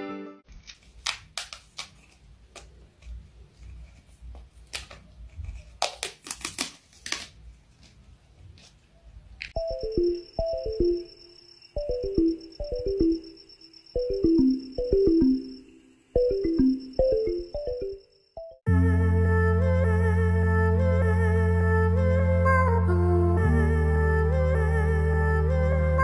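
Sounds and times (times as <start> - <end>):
cat claws scratching wallpaper: 0.5 - 8.8
music track: 9.6 - 11.1, 11.8 - 13.4, 14.0 - 26.0
tune with falling runs of notes: 9.6 - 11.1, 11.8 - 13.3, 14.0 - 20.4.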